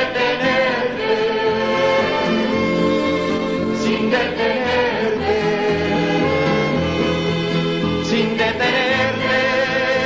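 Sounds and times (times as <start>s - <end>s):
choir singing long notes: 0.0s - 10.0s.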